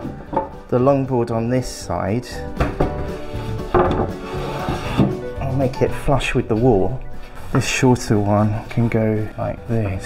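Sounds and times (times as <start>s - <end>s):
background music: 0.0s - 10.0s
wood knock: 2.6s - 3.1s, 3.7s - 4.2s
wood rubbing against wood: 2.6s - 5.4s.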